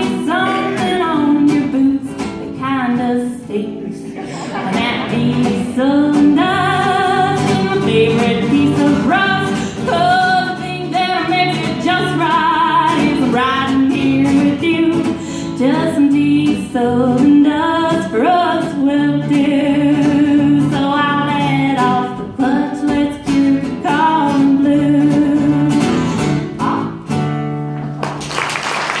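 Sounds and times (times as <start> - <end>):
woman singing country song: 0.0 - 27.3
strummed acoustic guitar: 0.0 - 28.0.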